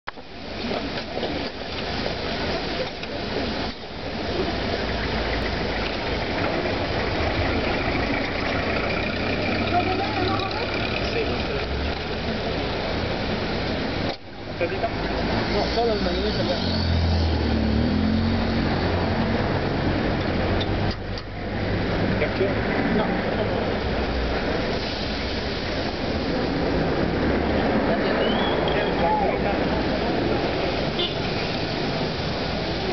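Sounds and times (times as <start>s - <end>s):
street noise: 0.0s - 32.9s
vehicle engine idling: 2.4s - 14.9s.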